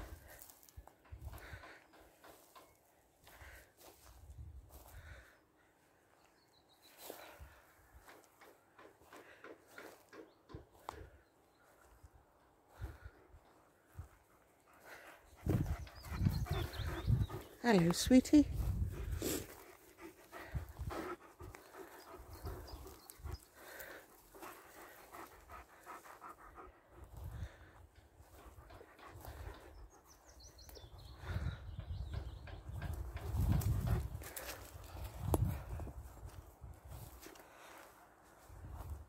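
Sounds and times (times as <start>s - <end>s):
dog panting: 12.8s - 36.4s
dull low thumps: 15.3s - 17.6s.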